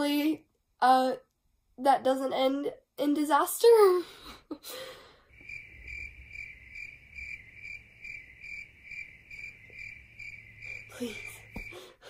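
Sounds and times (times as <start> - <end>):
cricket chirping: 5.2 - 12.0.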